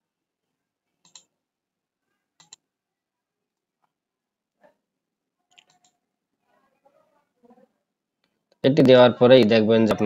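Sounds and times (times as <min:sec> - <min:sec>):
computer mouse clicks: 0:01.0 - 0:01.3, 0:02.4 - 0:02.6, 0:05.5 - 0:06.0.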